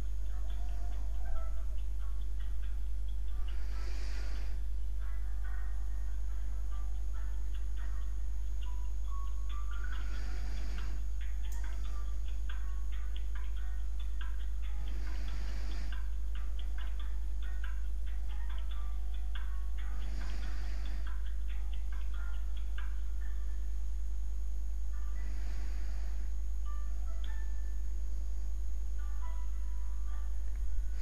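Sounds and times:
person breathing near microphone: 0:00.0 - 0:08.8, 0:09.5 - 0:23.2, 0:24.9 - 0:27.5, 0:30.4 - 0:31.0
rapid small ticks: 0:00.0 - 0:23.5
low hum: 0:00.0 - 0:31.0.

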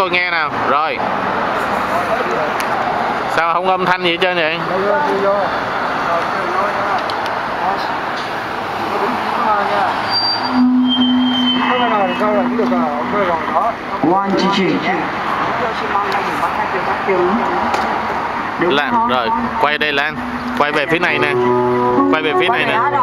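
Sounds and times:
passing cars: 0:00.0 - 0:23.0
voices: 0:00.0 - 0:23.0
steady low tone: 0:10.4 - 0:14.1.

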